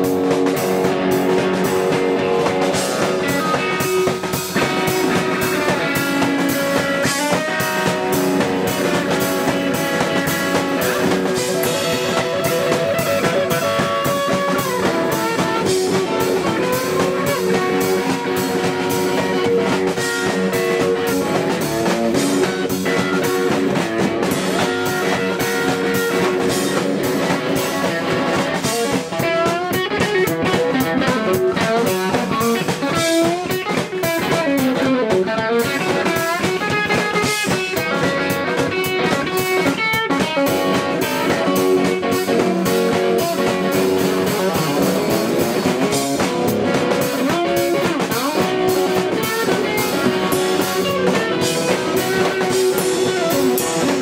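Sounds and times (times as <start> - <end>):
drum kit: 0.0 - 54.0
electric guitar playing blues: 0.0 - 54.0.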